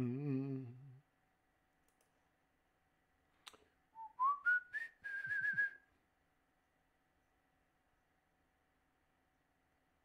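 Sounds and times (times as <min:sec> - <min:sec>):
man whistling a tune: 0:04.0 - 0:05.9.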